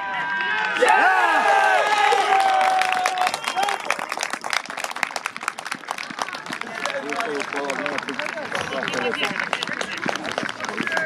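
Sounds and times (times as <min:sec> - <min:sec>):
spectators clapping: 0:00.3 - 0:11.0.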